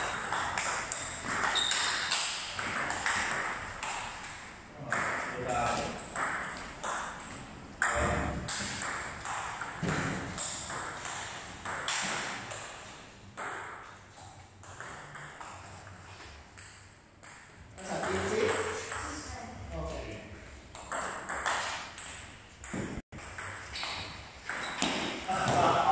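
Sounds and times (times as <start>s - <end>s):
ping-pong ball clicking: 0.0s - 4.4s.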